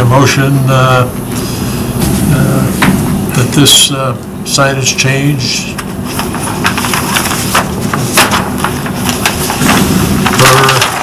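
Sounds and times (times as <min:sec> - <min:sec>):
papers rustling: 0:05.8 - 0:11.0.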